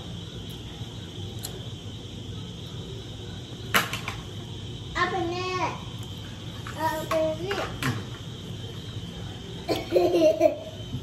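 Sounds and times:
background hum: 0.0 - 11.0.

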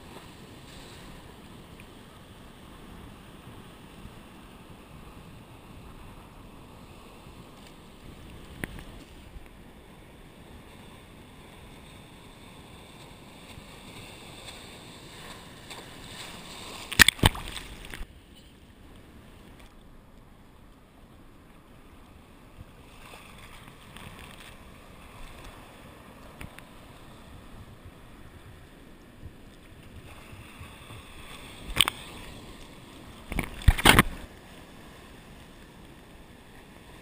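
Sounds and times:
muffled ocean surf: 0.0 - 37.0
wind: 0.0 - 37.0
water splash: 13.4 - 18.1, 33.2 - 34.3.

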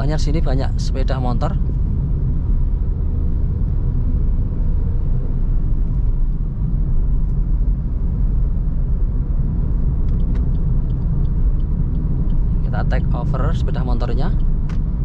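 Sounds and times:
car engine and tyres rumbling: 0.0 - 15.0.

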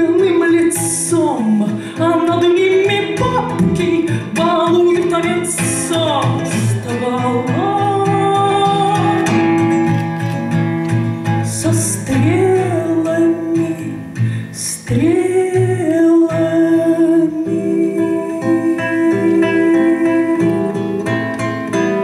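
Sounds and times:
woman singing: 0.0 - 10.0, 11.3 - 22.0
plucked acoustic guitar: 0.0 - 22.0.

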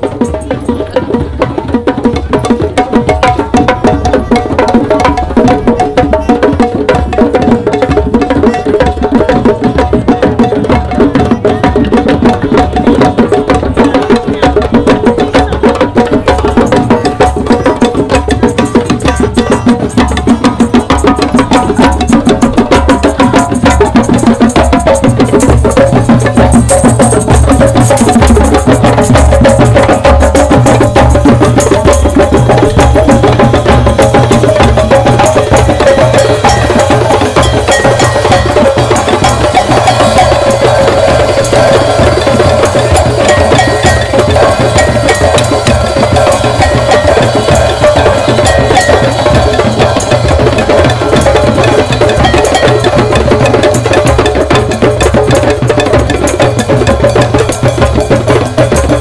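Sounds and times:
hand drums playing rhythm: 0.0 - 59.0.

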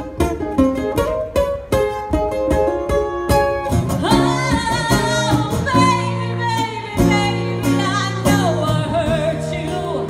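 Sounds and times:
electric guitar: 0.0 - 10.0
woman singing: 3.9 - 10.0.

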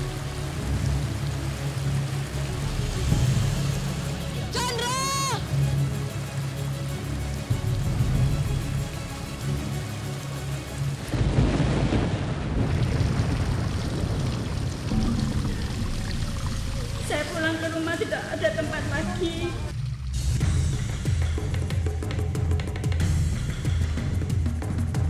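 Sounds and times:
rain and thunder effects: 0.0 - 22.0.

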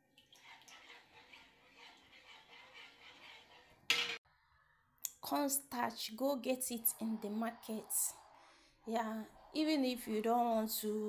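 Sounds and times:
stirring paste in metal saucepan: 0.1 - 4.2.

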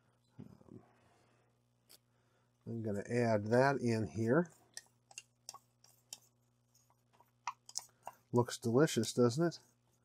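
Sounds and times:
faint stick scraping ticks: 4.7 - 8.3.

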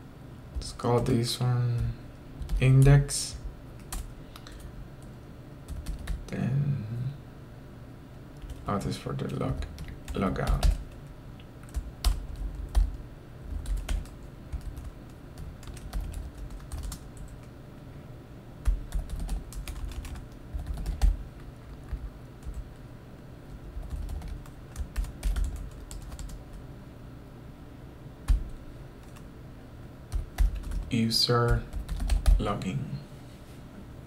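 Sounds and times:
computer keyboard typing: 1.7 - 3.0, 3.8 - 4.7, 5.7 - 6.4, 8.4 - 8.8, 9.5 - 11.0, 11.6 - 17.5, 18.6 - 22.7, 23.8 - 26.4, 28.3 - 29.3, 30.1 - 32.5.

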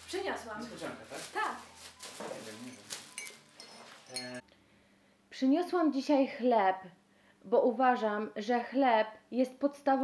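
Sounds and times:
plastic bag rustling: 0.0 - 4.4.

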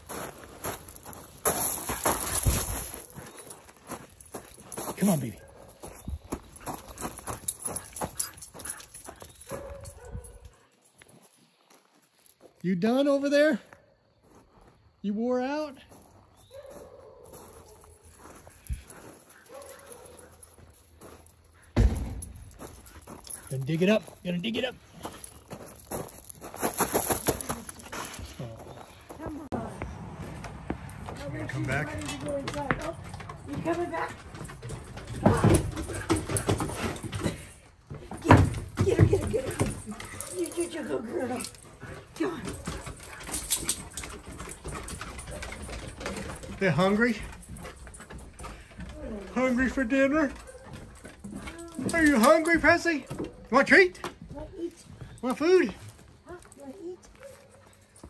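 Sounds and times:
footsteps on wooden decking: 0.0 - 12.6, 15.7 - 58.0
paws crunching on gravel: 0.0 - 13.2, 14.0 - 35.2.

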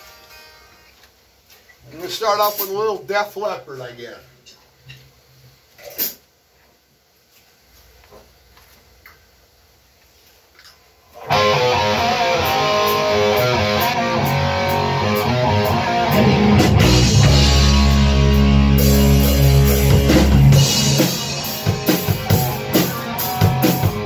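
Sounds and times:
rock band with electric guitar: 11.2 - 24.0.

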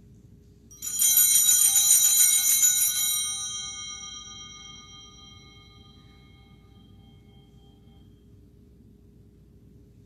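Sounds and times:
altar bells ringing: 0.7 - 8.4.

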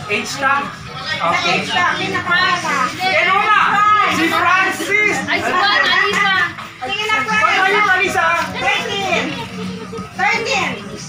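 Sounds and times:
young people talking and calling out: 0.0 - 11.0.

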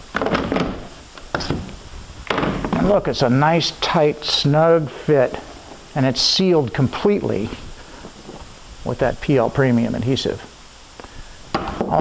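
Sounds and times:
clamps clunking against wood: 0.1 - 1.7.

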